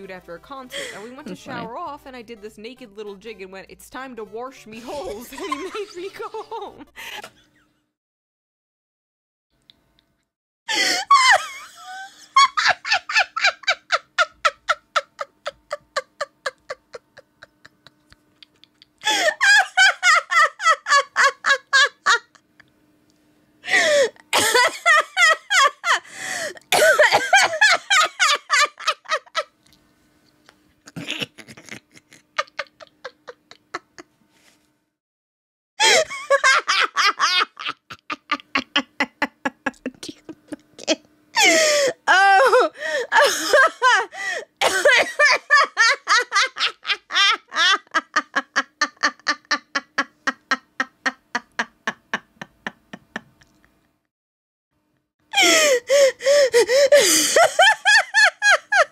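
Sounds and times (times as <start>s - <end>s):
woman laughing hard: 4.8s - 7.4s, 10.7s - 22.4s, 23.7s - 29.5s, 30.9s - 34.1s, 35.8s - 53.7s, 55.3s - 58.9s.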